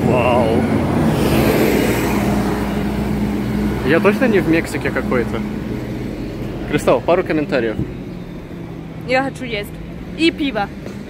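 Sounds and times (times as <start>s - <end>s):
bus engine droning: 0.0s - 11.0s.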